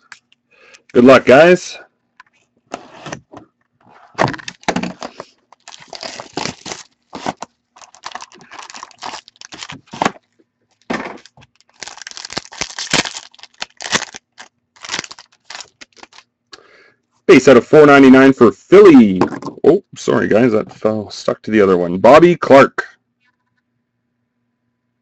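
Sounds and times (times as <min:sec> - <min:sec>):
plastic wrap and cardboard tearing: 0:04.2 - 0:10.2, 0:10.9 - 0:16.2.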